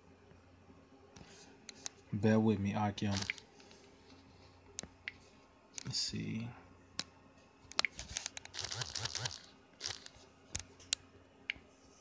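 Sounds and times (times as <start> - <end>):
sharp clicks: 3.1 - 3.4.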